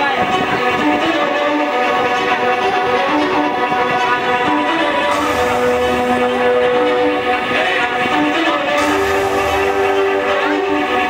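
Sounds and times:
live band amplified chords: 0:00.9 - 0:11.0.

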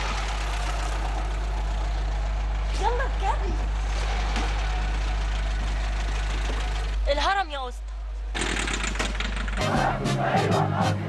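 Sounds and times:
taxi engine running: 0:00.0 - 0:11.0
music: 0:09.6 - 0:11.0.

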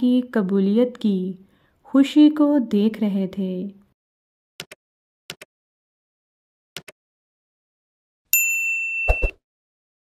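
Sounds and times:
notification bell ding: 0:08.4 - 0:09.4.

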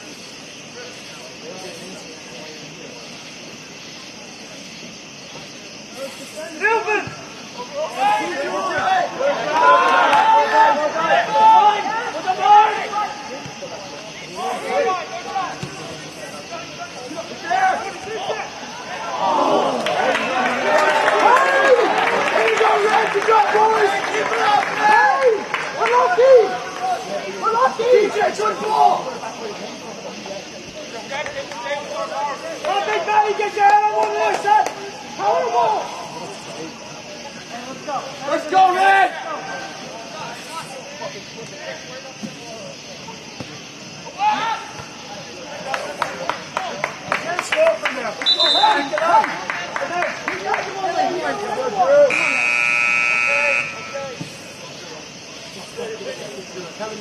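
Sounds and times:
men shouting calls: 0:06.4 - 0:30.2, 0:31.0 - 0:36.8, 0:37.6 - 0:40.3, 0:44.0 - 0:54.3
buzzer high tone: 0:52.1 - 0:54.2.

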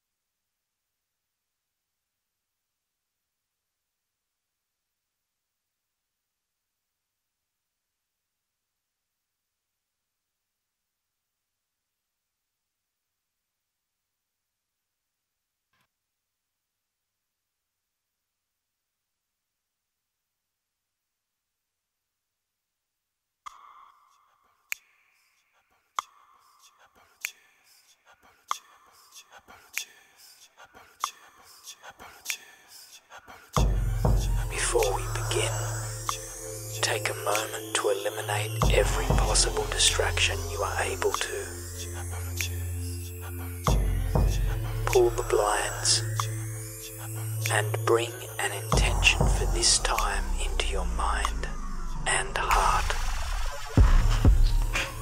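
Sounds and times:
faint whispery hiss: 0:24.1 - 0:43.5, 0:44.4 - 0:55.0
low drone: 0:33.7 - 0:55.0
sharp breathy hiss: 0:54.0 - 0:55.0.

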